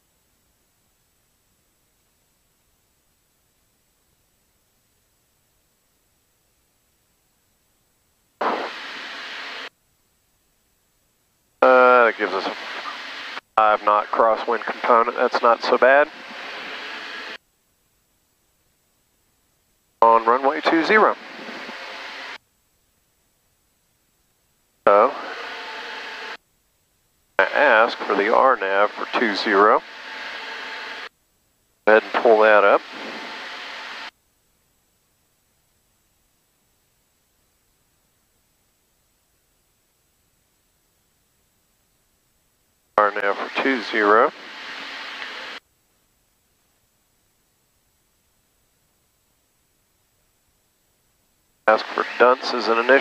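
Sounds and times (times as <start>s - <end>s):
static hiss over headset: 0.0s - 53.0s
cabin hiss through headset: 31.9s - 34.1s.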